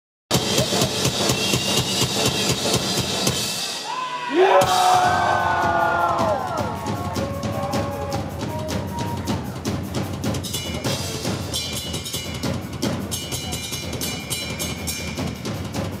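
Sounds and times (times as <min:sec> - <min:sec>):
rock drum solo: 0:00.3 - 0:16.0
cymbals ringing: 0:00.4 - 0:04.0, 0:07.1 - 0:16.0
crowd shouting: 0:03.8 - 0:09.6.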